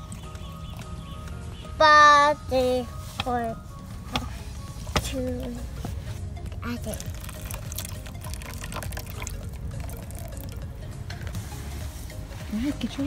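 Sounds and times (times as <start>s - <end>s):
water pouring and splashing: 6.6s - 10.7s.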